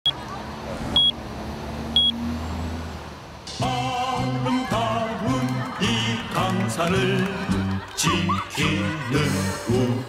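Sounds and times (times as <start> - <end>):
low rumble of street traffic: 0.0 - 10.0
music: 3.5 - 10.0.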